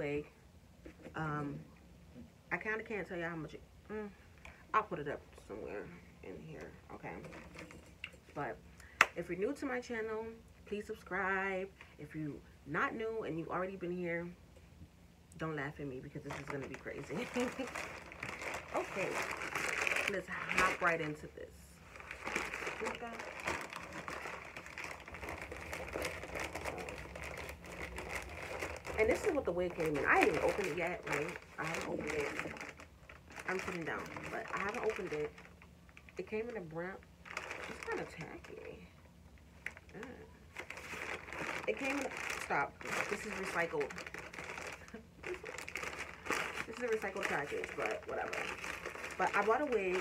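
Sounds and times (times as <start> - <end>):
paper envelope rustling and crinkling: 16.2 - 21.2, 21.8 - 36.5, 37.2 - 38.6, 39.6 - 50.0.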